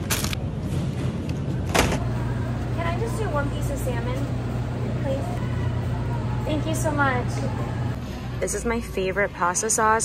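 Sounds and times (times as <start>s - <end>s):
steady low hum: 0.4s - 9.6s.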